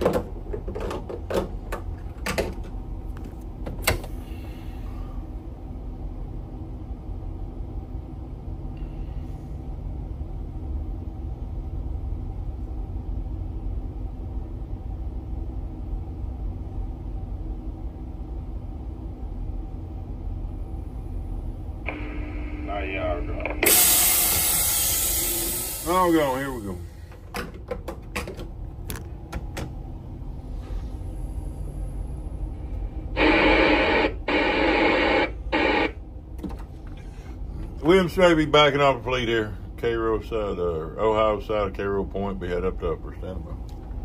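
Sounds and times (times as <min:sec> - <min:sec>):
diesel engines droning: 0:19.5 - 0:27.3, 0:28.4 - 0:44.0.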